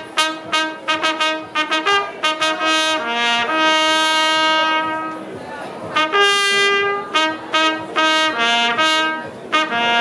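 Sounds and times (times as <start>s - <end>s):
trumpet holding long note: 0.0s - 10.0s.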